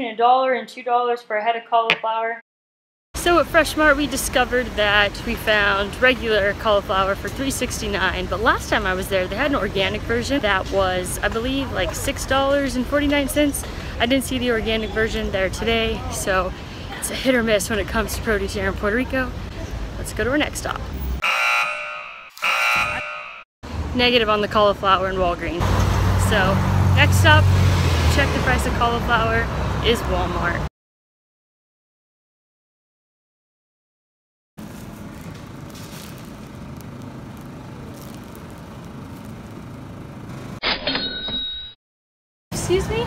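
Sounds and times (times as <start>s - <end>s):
electronic buzzer tone: 21.2s - 23.4s.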